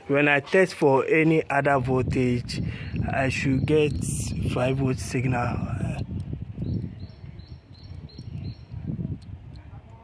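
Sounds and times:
bird chirping: 0:03.3 - 0:08.9.

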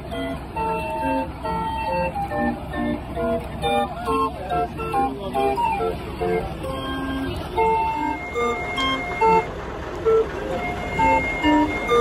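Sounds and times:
barrel organ playing a tune: 0:00.0 - 0:12.0.

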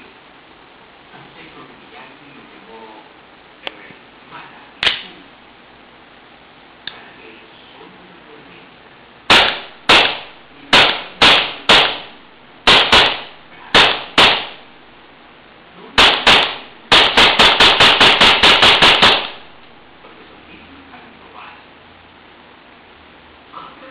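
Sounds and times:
pistol shots: 0:09.3 - 0:14.7, 0:16.0 - 0:19.6.

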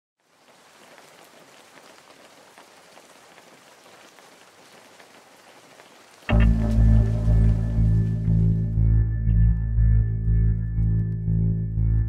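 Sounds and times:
soft steady rain: 0:00.2 - 0:08.9.

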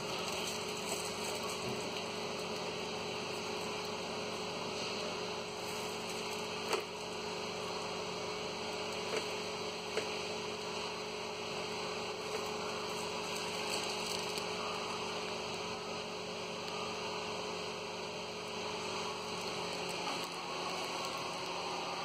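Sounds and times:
electrical hum: 0:00.0 - 0:22.0.

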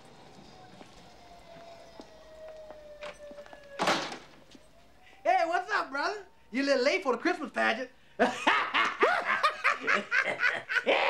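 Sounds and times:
man laughing: 0:08.2 - 0:11.0.

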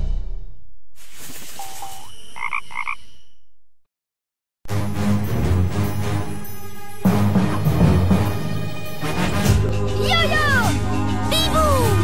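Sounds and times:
cartoon frog croaks: 0:02.4 - 0:03.0.

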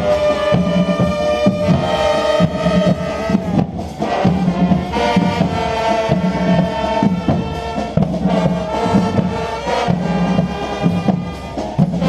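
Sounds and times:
bass drum beats: 0:00.0 - 0:12.0
marching band playing: 0:00.0 - 0:12.0
trumpets and trombones chords: 0:00.0 - 0:12.0.

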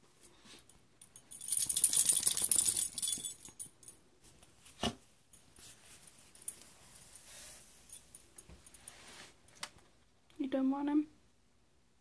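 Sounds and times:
small metal bell jingling: 0:01.0 - 0:04.0, 0:05.3 - 0:09.0.

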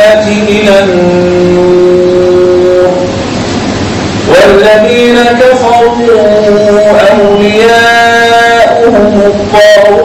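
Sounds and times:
man reciting a long note: 0:00.0 - 0:03.2, 0:04.2 - 0:10.0.

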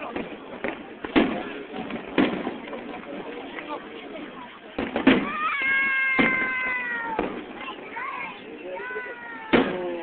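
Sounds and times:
fireworks bangs: 0:00.0 - 0:03.9, 0:04.6 - 0:10.0.

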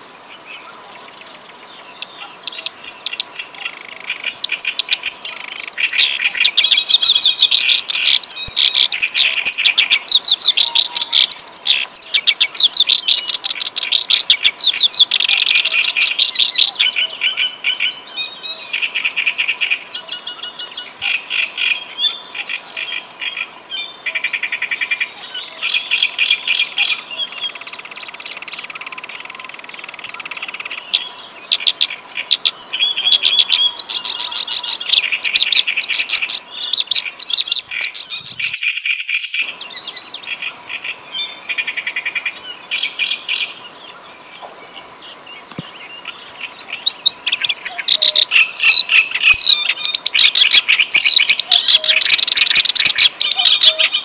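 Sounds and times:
reed warbler singing: 0:00.0 - 0:54.0.

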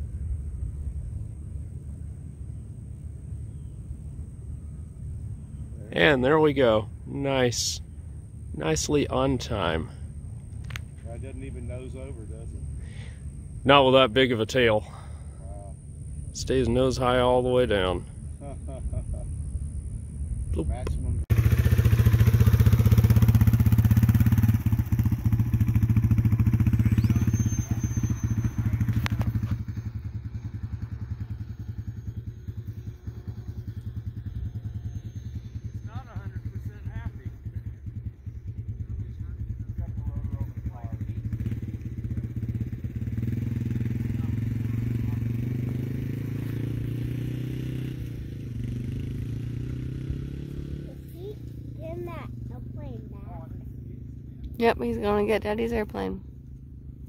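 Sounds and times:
dirt bike engine idling: 0:00.0 - 0:57.0.

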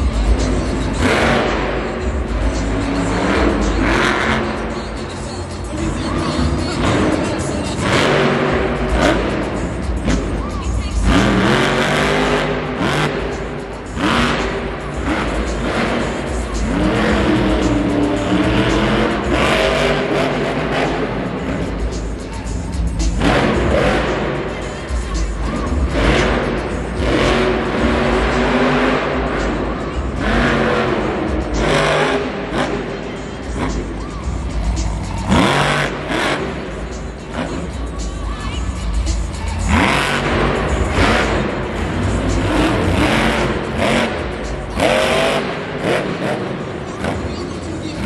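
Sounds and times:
arena music: 0:00.0 - 0:48.0
monster truck engine revving: 0:00.0 - 0:48.0.

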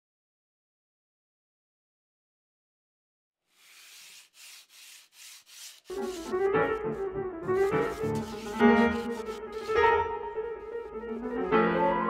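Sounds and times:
sandpaper rasping on wood: 0:03.5 - 0:09.9.

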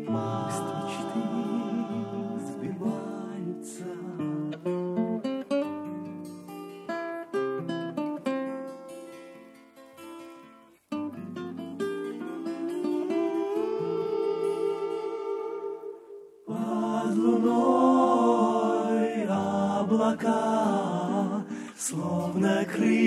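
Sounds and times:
plucked guitar notes: 0:11.0 - 0:16.0.

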